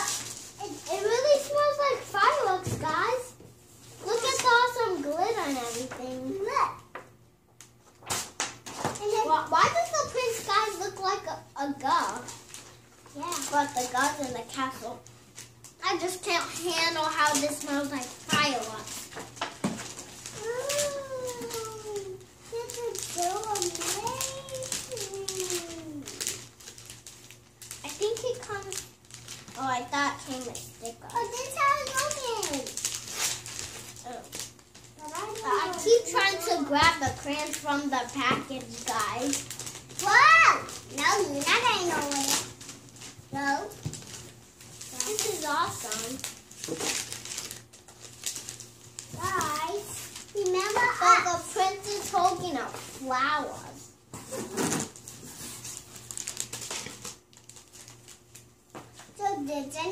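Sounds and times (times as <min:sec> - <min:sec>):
plastic wrapper crinkling: 0:00.0 - 0:03.3, 0:04.0 - 0:06.4, 0:07.7 - 0:59.2
young child talking: 0:00.0 - 0:03.4, 0:04.0 - 0:06.9, 0:09.0 - 0:12.3, 0:13.1 - 0:15.0, 0:15.8 - 0:18.9, 0:20.4 - 0:26.2, 0:27.8 - 0:28.8, 0:29.6 - 0:32.8, 0:34.0 - 0:34.3, 0:34.9 - 0:42.5, 0:43.3 - 0:43.8, 0:44.9 - 0:46.2, 0:49.2 - 0:53.8, 0:59.2 - 0:59.9.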